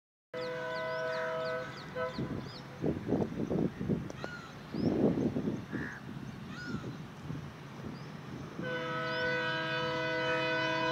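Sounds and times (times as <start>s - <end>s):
small birds chirping: 0.8s - 8.4s
crows cawing: 5.7s - 6.8s.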